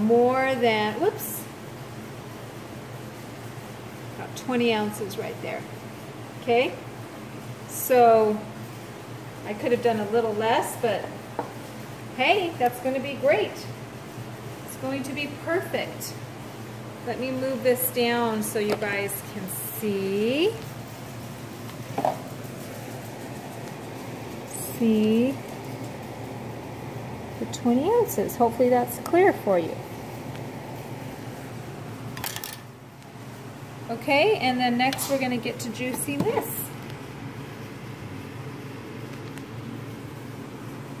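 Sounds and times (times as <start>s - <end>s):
steady background hum: 0.0s - 41.0s
light knock on countertop: 11.4s - 11.6s, 22.0s - 22.2s.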